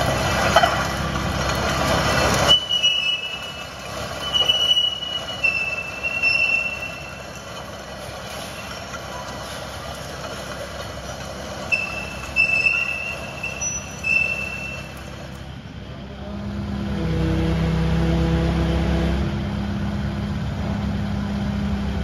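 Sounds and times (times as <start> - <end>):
mini digger machinery noise: 0.0 - 22.0
high squeals: 2.1 - 10.5, 11.5 - 15.4.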